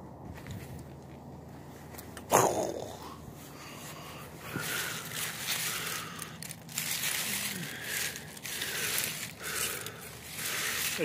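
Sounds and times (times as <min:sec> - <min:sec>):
leaves rustling and crackling: 0:03.3 - 0:11.0.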